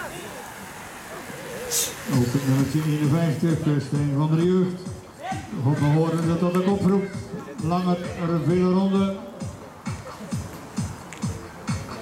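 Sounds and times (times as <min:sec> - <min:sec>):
short sharp hiss: 0:00.2 - 0:02.7.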